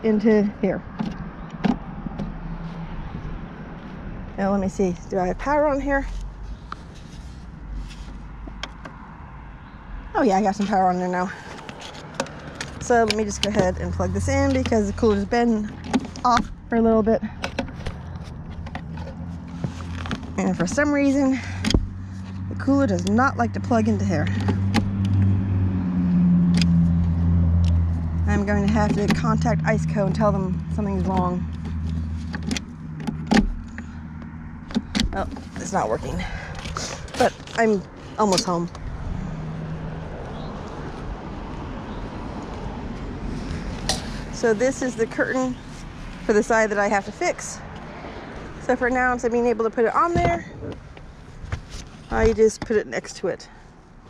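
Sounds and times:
gear handling rumble: 0.0s - 54.0s.

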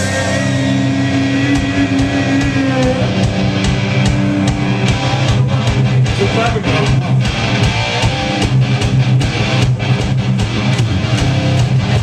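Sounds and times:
distorted electric guitars and bass: 0.0s - 12.0s
drum hits: 0.0s - 12.0s.

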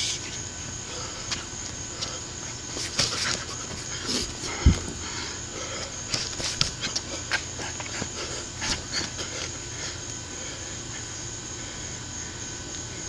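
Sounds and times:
steady low hiss: 0.0s - 13.0s
boxer breathing hard: 0.7s - 12.2s.

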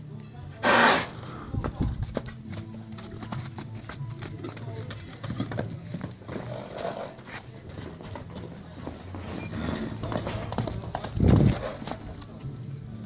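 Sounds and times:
horse hooves on packed dirt: 0.4s - 13.0s.

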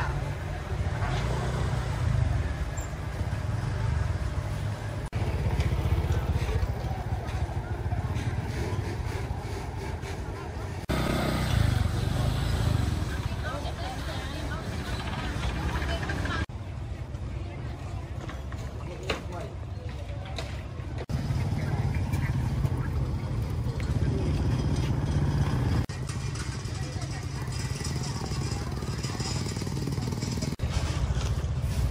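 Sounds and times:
motorbikes running: 0.0s - 31.9s
people talking: 5.2s - 30.8s.

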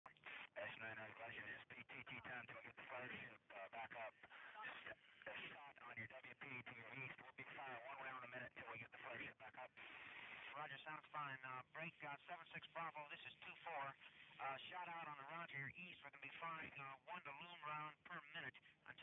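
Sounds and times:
men talking over two-way radio: 0.3s - 19.0s.

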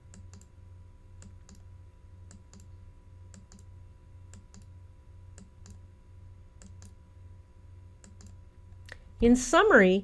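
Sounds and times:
computer mouse clicks: 0.0s - 0.5s, 1.2s - 1.7s, 2.3s - 2.7s, 3.3s - 3.7s, 4.3s - 5.8s, 6.6s - 7.0s, 8.0s - 9.0s
low electrical hum: 0.0s - 10.0s.

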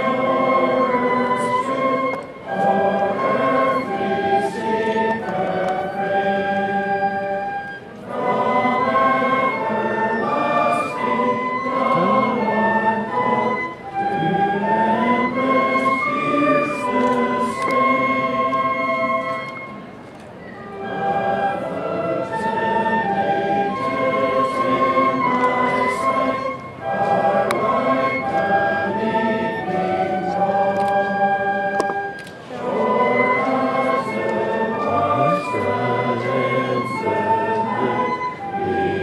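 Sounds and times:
men singing a hymn: 0.0s - 19.2s, 20.9s - 39.0s
brass band accompaniment: 20.5s - 39.0s.

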